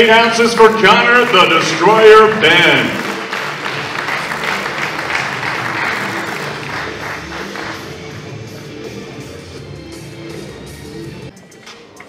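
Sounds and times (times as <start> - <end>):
music: 0.0 - 12.0
audience applause: 0.2 - 8.2.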